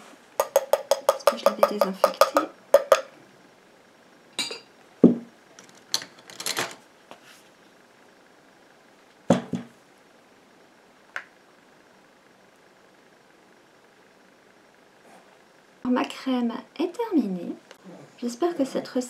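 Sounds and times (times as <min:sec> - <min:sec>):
utensil knocking on steel bowl: 0:00.4 - 0:03.1.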